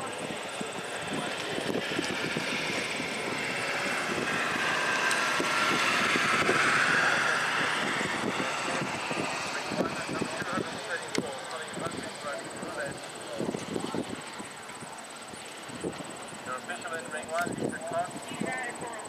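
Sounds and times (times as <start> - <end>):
rushing noise passing by: 0.0 - 18.4.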